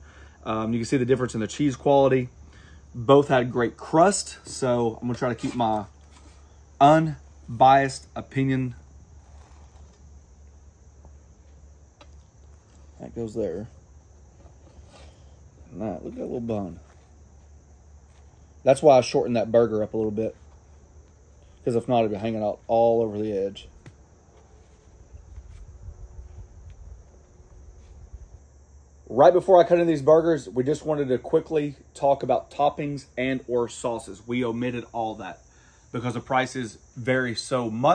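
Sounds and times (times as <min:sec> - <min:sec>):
insects chirring: 0:00.0 - 0:37.9.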